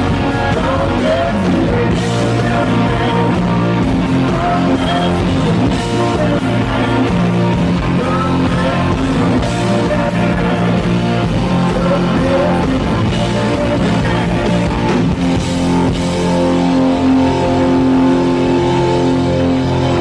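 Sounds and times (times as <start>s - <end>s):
man singing into microphone: 0.0s - 14.9s
live rock band playing: 0.0s - 20.0s.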